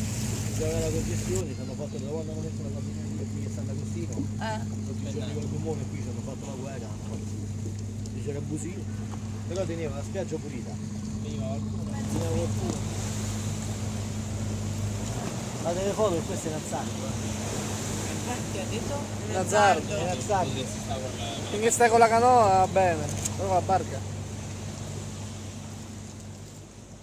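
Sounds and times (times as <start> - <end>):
boat engine humming: 0.0 - 27.0
hiss of water and wind: 0.0 - 27.0.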